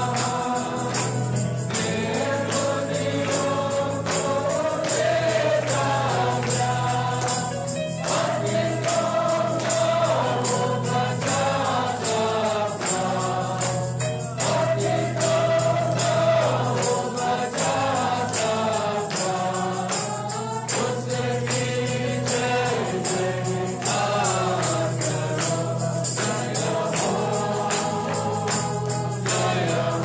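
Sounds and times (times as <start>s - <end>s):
choir singing: 0.0s - 30.0s
steady percussion beat: 0.0s - 30.0s.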